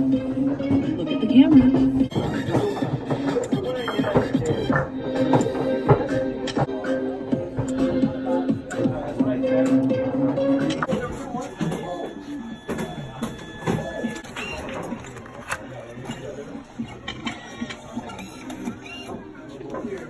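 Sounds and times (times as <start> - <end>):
background music: 0.0 - 18.7
voices: 0.0 - 20.0
photo printer running: 10.8 - 20.0.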